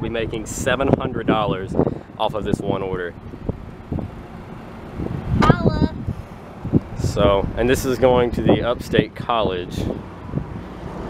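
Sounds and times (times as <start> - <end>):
low steady rumble: 0.0 - 10.7
wind on microphone: 0.0 - 11.0.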